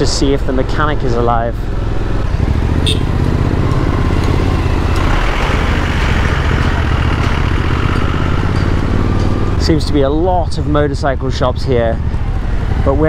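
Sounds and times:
motorcycle engine running: 0.0 - 13.0
wide noisy rush: 2.0 - 9.3.

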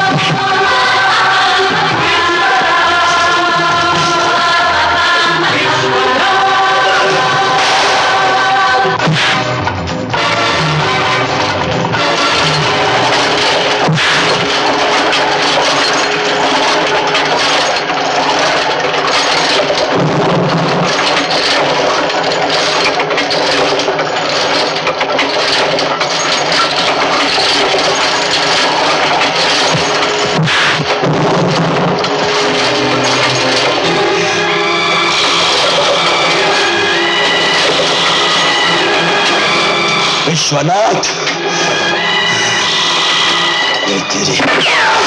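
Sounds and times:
background film music: 0.0 - 45.0
clattering rattling sound effects: 0.0 - 45.0
sharp crack-like hits: 10.8 - 39.5.

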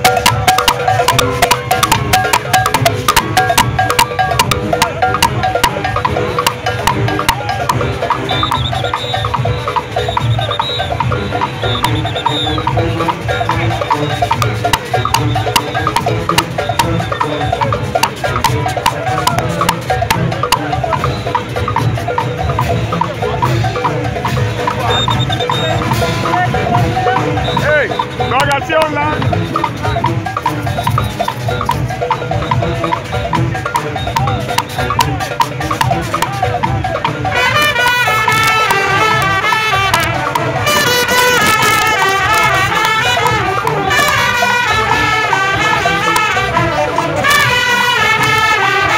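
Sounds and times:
drums beating steadily: 0.0 - 48.9
held horn notes: 0.0 - 48.9
rapid cowbell clanging: 0.0 - 48.9.

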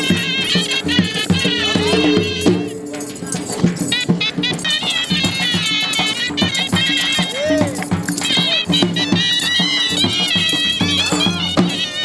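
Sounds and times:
high piping melody: 0.0 - 6.4
dhol drum beating: 0.0 - 12.0
low drone: 0.6 - 3.9.

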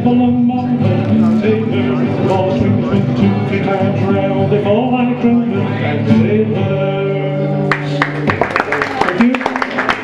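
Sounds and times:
strummed acoustic guitar: 0.0 - 8.5.

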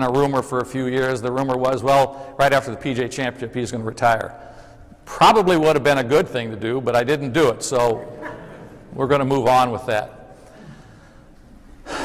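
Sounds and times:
man breathing in: 2.1 - 2.4, 4.4 - 5.0, 10.4 - 12.0.

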